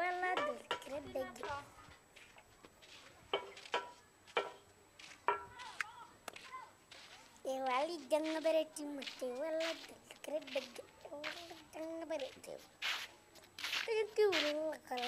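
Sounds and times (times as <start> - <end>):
child's high-pitched voice: 0.0 - 2.0, 5.5 - 12.7, 13.8 - 15.0.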